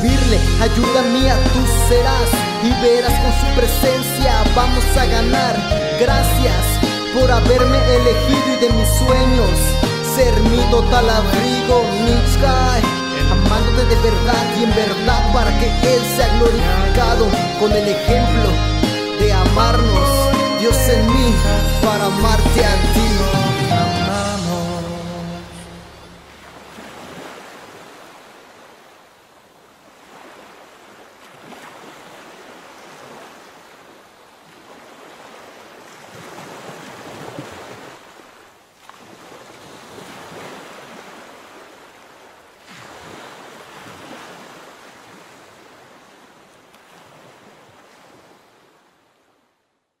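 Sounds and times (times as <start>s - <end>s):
ocean waves on sandy beach: 24.7s - 49.6s.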